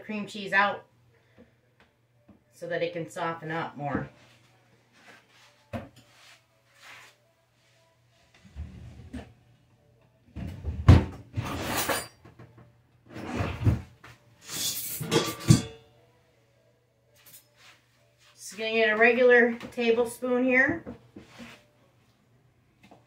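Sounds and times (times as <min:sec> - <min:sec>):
plates and utensils clattering: 0:14.4 - 0:15.9.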